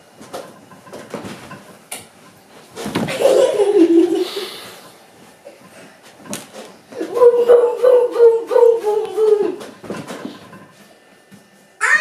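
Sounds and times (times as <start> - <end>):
soft knocks and thuds: 2.8 - 3.2
child laughing loudly: 3.1 - 4.5, 7.0 - 9.6.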